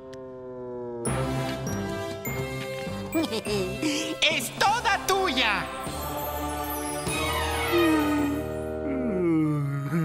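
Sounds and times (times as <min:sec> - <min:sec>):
cartoon background music: 0:01.0 - 0:10.0
high-pitched cartoon creature voices: 0:07.3 - 0:10.0.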